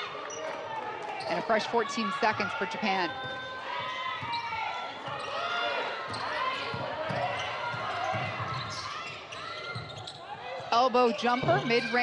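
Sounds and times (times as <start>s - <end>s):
sneaker squeaks: 0.3s - 1.6s, 3.0s - 12.0s.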